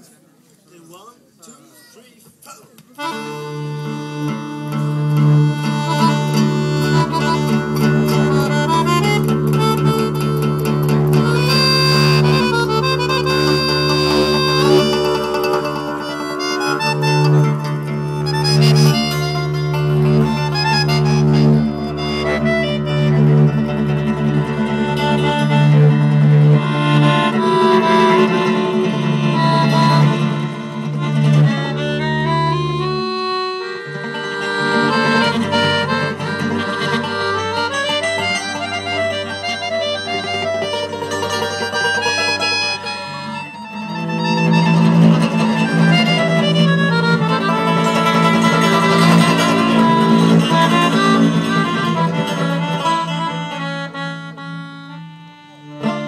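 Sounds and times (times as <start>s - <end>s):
accordion: 2.9s - 56.0s
guitar: 2.9s - 56.0s
upright double bass: 3.0s - 56.0s
wind instrument: 3.0s - 56.0s.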